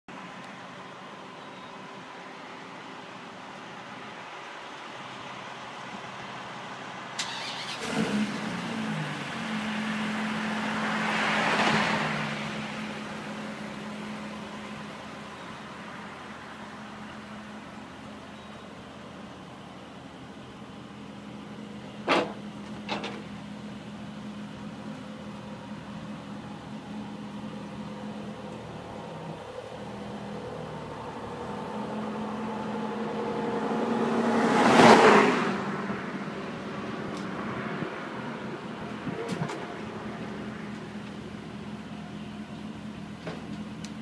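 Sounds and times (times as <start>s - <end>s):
outdoor background noise: 0.1s - 44.0s
car passing: 7.2s - 14.4s, 28.0s - 41.5s.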